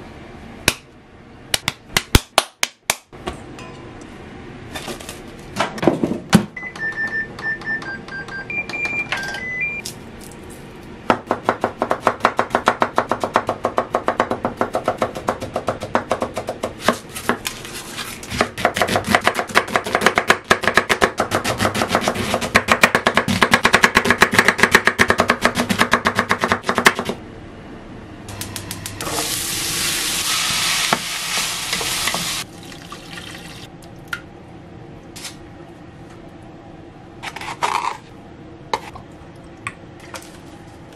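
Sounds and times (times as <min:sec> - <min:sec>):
microwave keypad beeps: 0:06.6 - 0:09.8
knife chopping on wooden board: 0:18.4 - 0:27.2
frying sizzle: 0:29.0 - 0:33.7.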